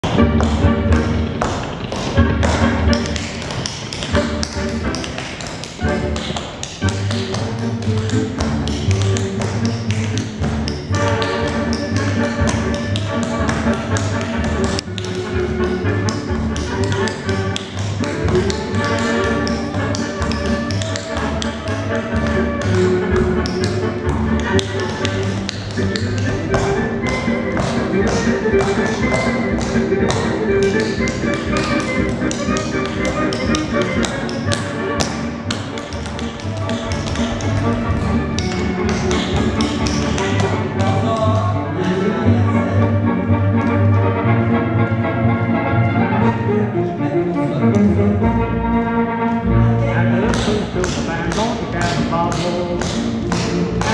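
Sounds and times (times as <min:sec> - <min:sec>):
shoes tapping on wooden floor: 0:00.0 - 0:41.4
music with steady beat: 0:00.0 - 0:41.6, 0:50.1 - 0:53.9.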